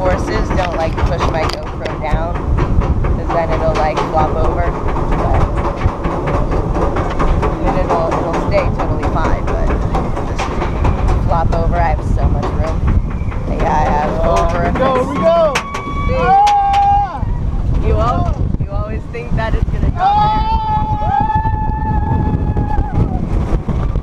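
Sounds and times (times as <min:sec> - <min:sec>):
chain lift rumble: 0:00.0 - 0:20.2.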